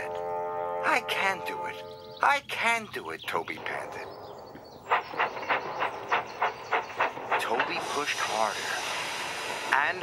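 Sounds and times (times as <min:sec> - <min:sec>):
steam locomotive chuffing: 0:04.7 - 0:10.0.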